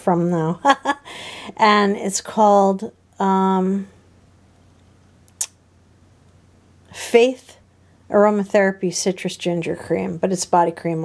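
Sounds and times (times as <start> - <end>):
sharp high-pitched click: 5.3 - 5.6.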